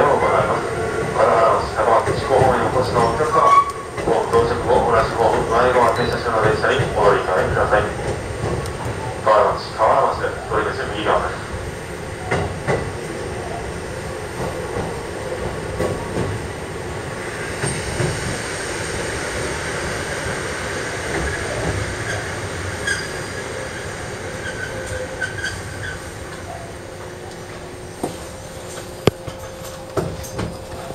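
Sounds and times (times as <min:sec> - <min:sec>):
wheels clacking over rail joints: 0:01.7 - 0:09.1
high wheel squeal: 0:03.0 - 0:03.9, 0:21.3 - 0:26.1.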